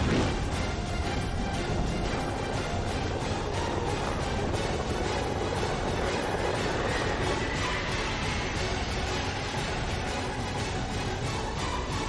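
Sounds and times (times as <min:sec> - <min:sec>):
dense rumbling noise: 0:00.0 - 0:11.5
music: 0:00.0 - 0:12.0.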